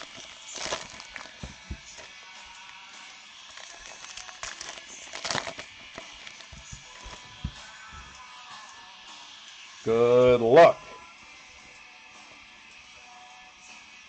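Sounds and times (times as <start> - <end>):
foil wrappers crinkling: 0.0 - 2.8, 3.4 - 8.1
faint background music: 0.0 - 14.0
cards tapping on table: 1.3 - 2.0, 6.0 - 8.1.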